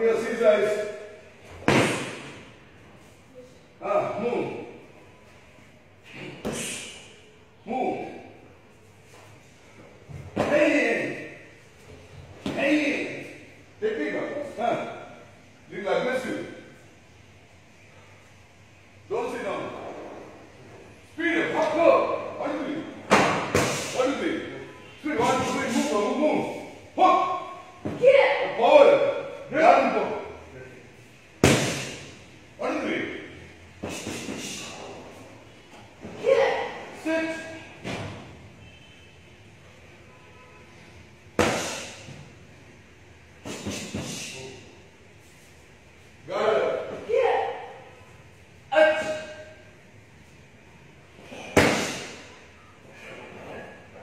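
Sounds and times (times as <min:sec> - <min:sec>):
karate strikes: 0:01.6 - 0:02.4, 0:23.1 - 0:24.2, 0:31.4 - 0:32.2, 0:33.8 - 0:34.6, 0:41.3 - 0:42.0, 0:43.4 - 0:44.4, 0:51.4 - 0:52.3
kicks and punches on pad: 0:31.4 - 0:31.9.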